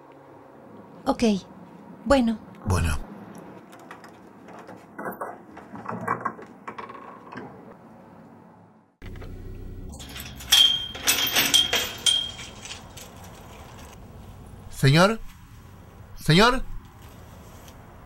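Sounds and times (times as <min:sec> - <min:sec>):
metallic clinking and jingling: 0:09.9 - 0:14.0.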